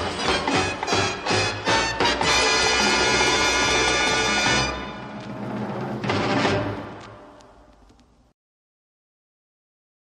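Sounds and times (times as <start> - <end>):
timpani: 0.0 - 7.7.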